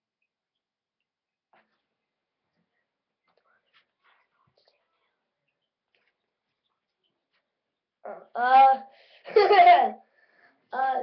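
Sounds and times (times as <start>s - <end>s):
child speaking loudly: 8.1s - 8.9s, 10.7s - 11.0s.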